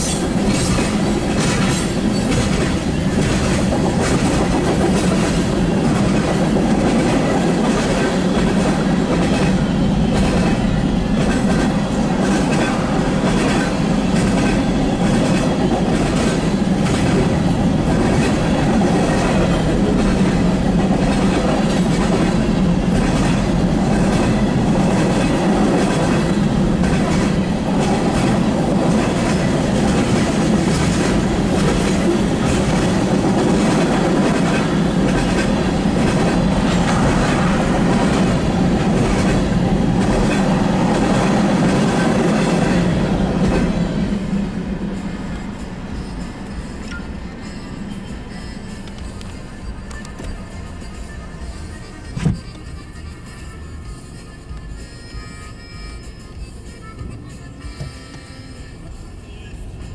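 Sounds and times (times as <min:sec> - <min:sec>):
steel wheels clicking over rail joints: 0:00.0 - 0:42.7.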